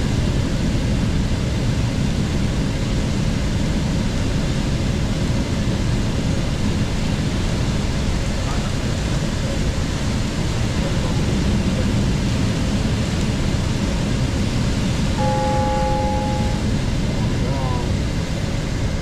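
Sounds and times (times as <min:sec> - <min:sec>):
aircraft cockpit noise: 0:07.8 - 0:19.0
two-pitch electronic tone: 0:15.2 - 0:16.8.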